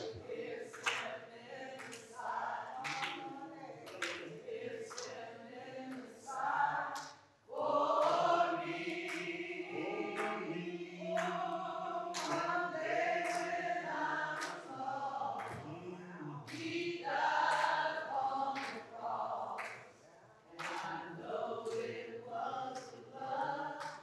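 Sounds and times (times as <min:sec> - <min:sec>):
choir singing slowly: 0:00.0 - 0:24.0.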